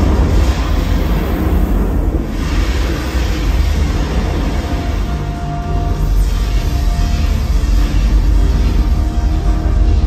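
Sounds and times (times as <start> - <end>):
deep thunder rumble: 0.0 - 5.8.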